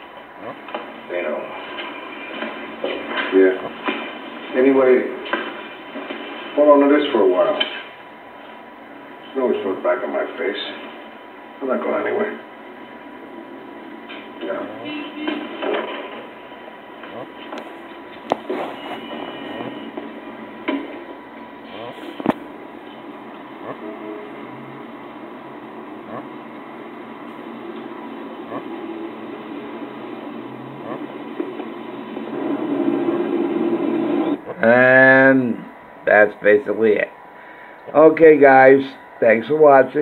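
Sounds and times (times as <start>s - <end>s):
steady hum: 0.0s - 40.0s.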